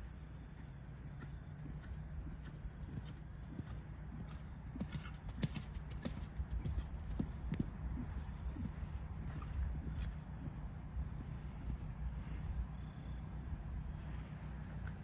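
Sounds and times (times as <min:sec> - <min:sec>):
horse hoofbeats cantering on sand: 0:00.0 - 0:12.1.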